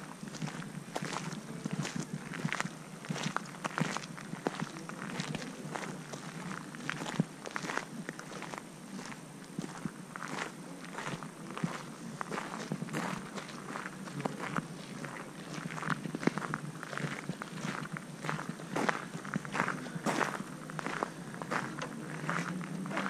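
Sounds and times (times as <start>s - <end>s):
boot footsteps on gravel: 0.3s - 23.0s.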